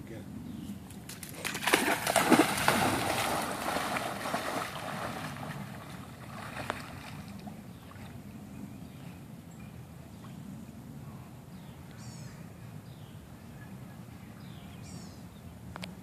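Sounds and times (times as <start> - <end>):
dog splashing into water: 1.1 - 7.4
dog swimming with faint sloshing: 1.4 - 9.3.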